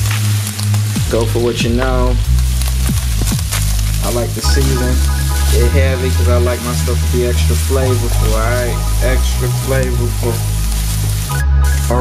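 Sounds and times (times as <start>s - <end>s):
meat sizzling in a frying pan: 0.0s - 11.9s
background music with deep bass: 0.0s - 12.0s.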